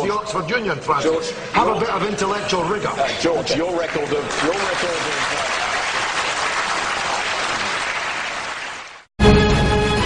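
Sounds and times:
audience applauding: 3.4s - 9.1s.

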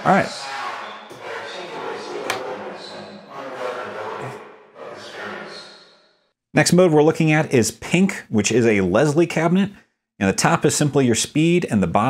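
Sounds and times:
reverberant smeared voice: 0.0s - 6.1s.

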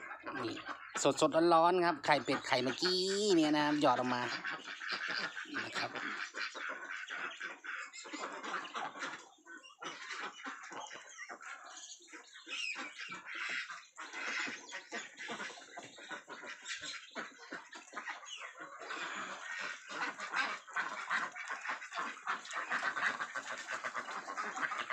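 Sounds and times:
flock of ducks quacking: 0.0s - 24.9s.

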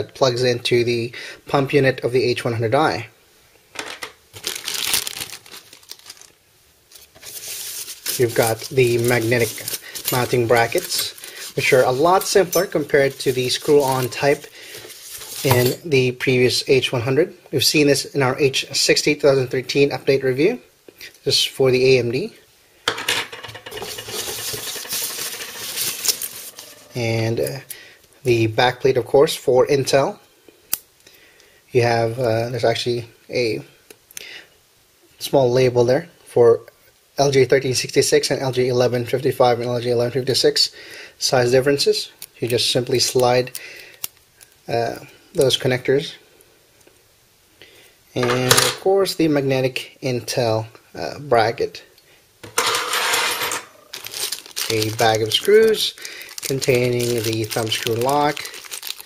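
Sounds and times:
plastic bags rustling: 3.8s - 15.9s, 23.3s - 27.2s, 52.4s - 59.0s.

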